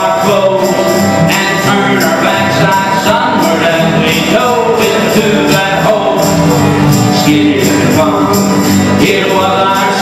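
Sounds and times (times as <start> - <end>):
man singing: 0.0 - 10.0
strummed acoustic guitars: 0.0 - 10.0.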